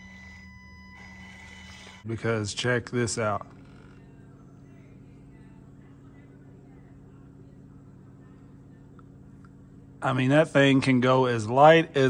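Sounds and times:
faint low motor hum: 0.0 - 12.0
woman talking faintly: 3.9 - 9.4.

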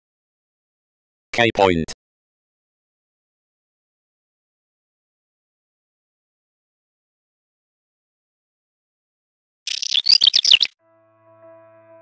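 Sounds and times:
bird singing: 9.7 - 10.8
soft piano music: 10.8 - 12.0.

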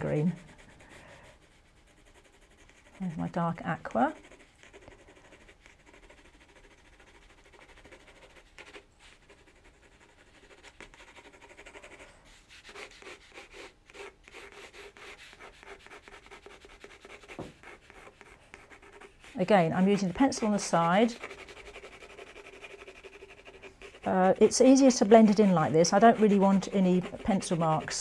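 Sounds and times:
pencil scratching on paper: 0.0 - 28.0.

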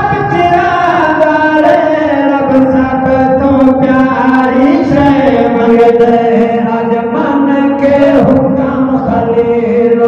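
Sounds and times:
men chanting into microphones: 0.0 - 10.0.

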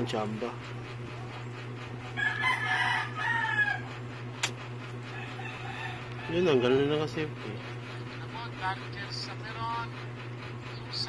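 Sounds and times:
rooster crowing: 2.2 - 4.1, 5.0 - 6.7.

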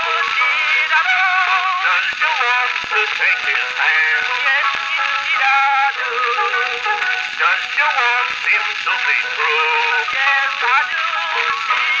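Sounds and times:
sung duet with music: 0.0 - 12.0.

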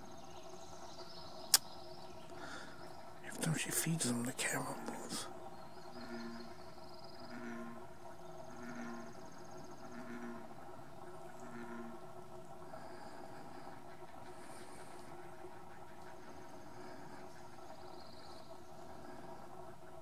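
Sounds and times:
high bird trills: 0.0 - 12.2.

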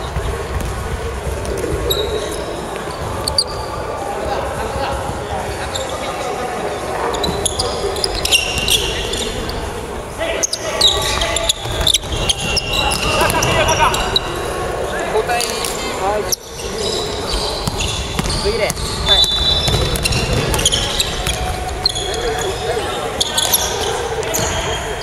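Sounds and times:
players' voices: 0.0 - 25.0
sneakers squeaking: 0.0 - 25.0
basketball bouncing on wooden floor: 17.6 - 21.5.

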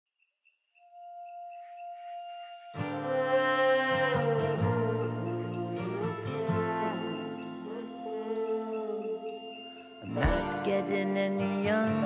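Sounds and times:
steady ringing tone: 0.7 - 12.0.

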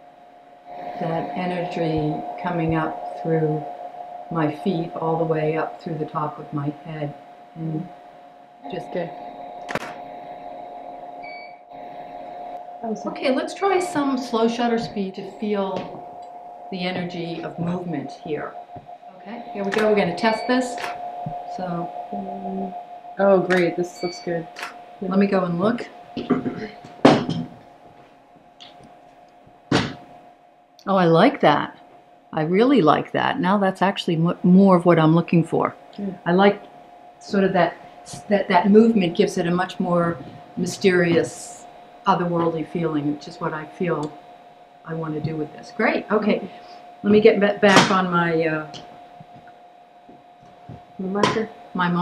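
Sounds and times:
faint steady hum: 0.0 - 52.0
loud thump: 29.7 - 30.1.

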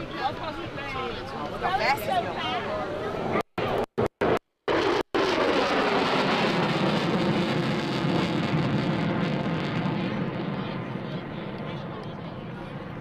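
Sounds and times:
jet afterburner rumble passing: 3.6 - 13.0.

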